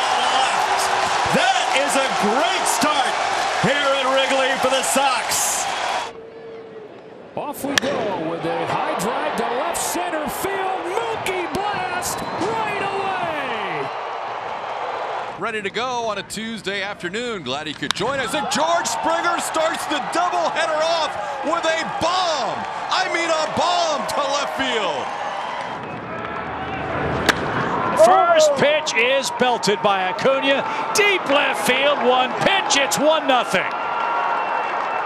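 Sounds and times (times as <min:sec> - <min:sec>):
ballpark background noise: 0:00.0 - 0:35.0
crowd noise: 0:00.0 - 0:35.0
wooden bat hitting ball: 0:27.2 - 0:27.5.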